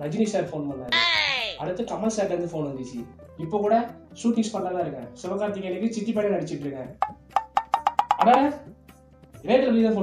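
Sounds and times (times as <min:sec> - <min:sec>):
cat meowing: 0:00.9 - 0:01.6.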